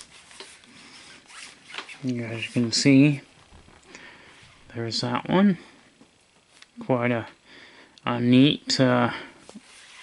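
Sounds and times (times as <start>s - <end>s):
card rubbing against card: 9.6s - 10.0s.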